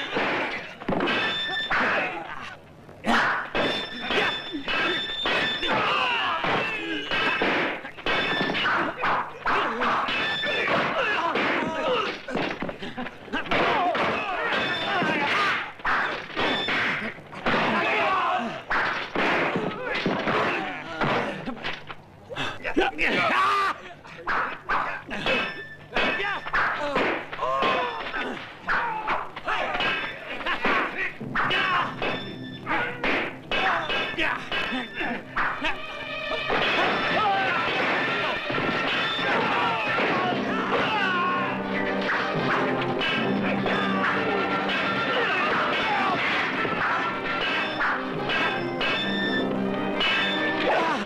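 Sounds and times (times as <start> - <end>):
fighters shouting: 0.0 - 21.5, 22.6 - 49.3, 50.2 - 51.0
dogs barking: 43.7 - 48.7
sword clashes with metallic ring: 50.0 - 50.5.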